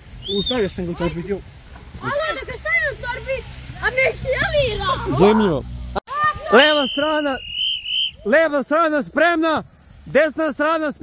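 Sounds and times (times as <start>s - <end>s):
child talking: 2.0s - 5.5s, 6.1s - 6.8s.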